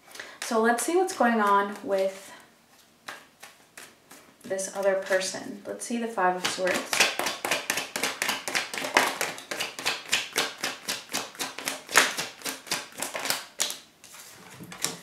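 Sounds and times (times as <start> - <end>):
cards being shuffled: 2.8 - 5.2, 6.4 - 15.0.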